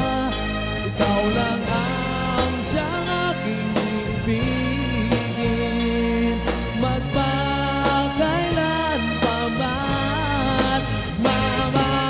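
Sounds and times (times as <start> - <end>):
bass: 0.0 - 12.0
drums: 0.0 - 12.0
pop song with lead vocal: 0.0 - 12.0.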